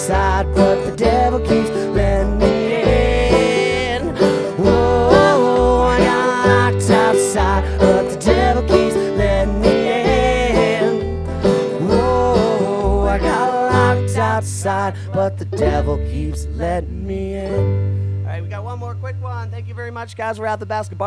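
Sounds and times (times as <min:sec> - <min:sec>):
plucked upright bass: 0:00.0 - 0:18.3
strummed acoustic guitar: 0:00.0 - 0:18.4
picked lead string instrument: 0:00.0 - 0:18.5.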